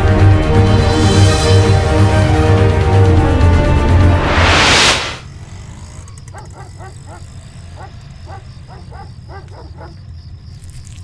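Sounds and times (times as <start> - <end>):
dog barking: 6.3 - 10.1.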